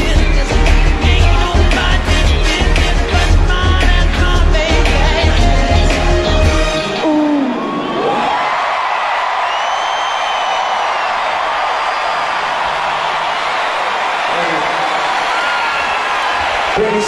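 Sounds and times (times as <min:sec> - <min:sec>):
crowd cheering and screaming: 0:06.0 - 0:17.0
long whistles: 0:09.4 - 0:11.2.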